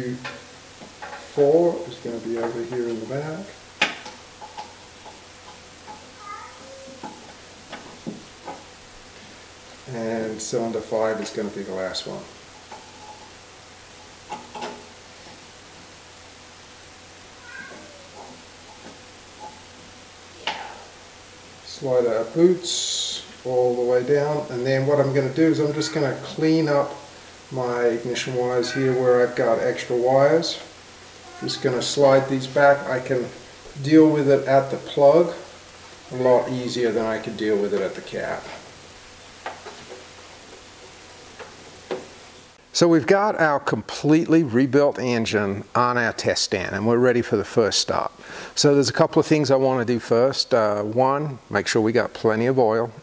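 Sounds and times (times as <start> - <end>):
room hiss: 0.0 - 53.0.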